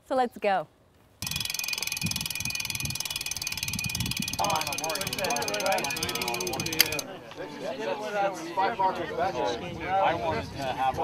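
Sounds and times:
rapid high-pitched ticking buzz: 1.2 - 7.0.

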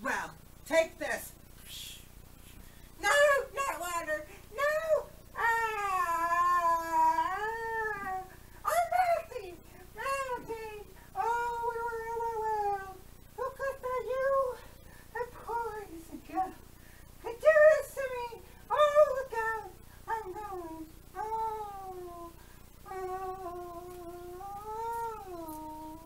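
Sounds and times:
high voice wailing: 3.0 - 16.6, 17.2 - 26.0.

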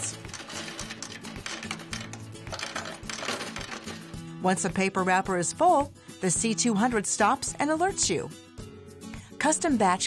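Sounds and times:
coin sorter clattering: 0.0 - 4.2
background music: 0.0 - 10.0.

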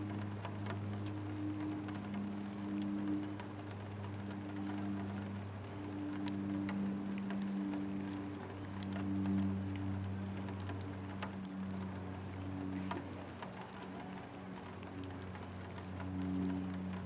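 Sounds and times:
light rain patter and dripping: 0.0 - 17.0
low hum: 0.0 - 17.0
small ticks: 0.0 - 17.0.

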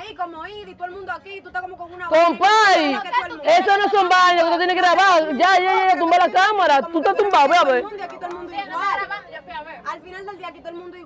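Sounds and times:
people arguing: 0.0 - 11.0.

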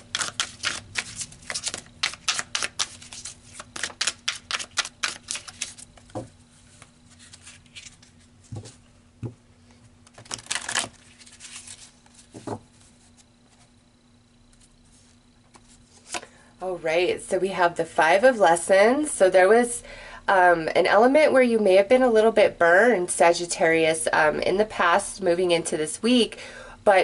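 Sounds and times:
cards being shuffled: 0.0 - 8.8, 10.0 - 13.7, 14.5 - 16.3.

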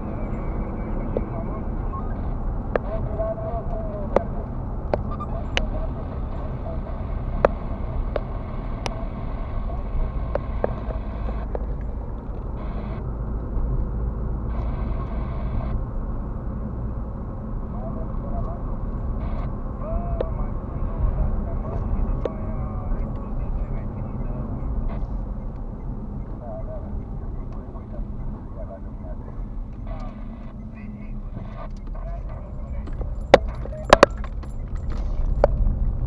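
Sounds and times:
car engine and tyre rumble: 0.0 - 36.0.

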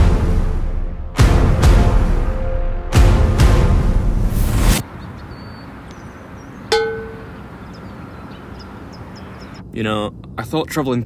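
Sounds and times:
short ringing ding: 6.7 - 7.4.

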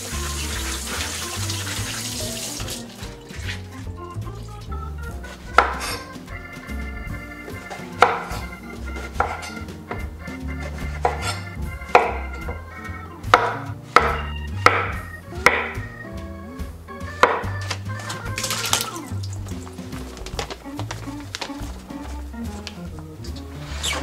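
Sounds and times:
knife chopping on wooden board: 5.3 - 6.0, 7.5 - 12.6, 13.2 - 15.9, 17.2 - 18.8.

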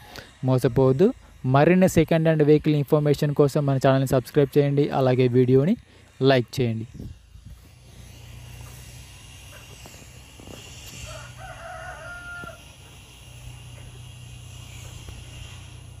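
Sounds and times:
rooster crowing: 10.6 - 14.1.

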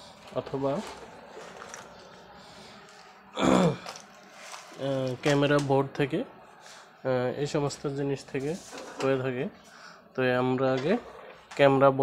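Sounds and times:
man coughing: 3.4 - 3.9.

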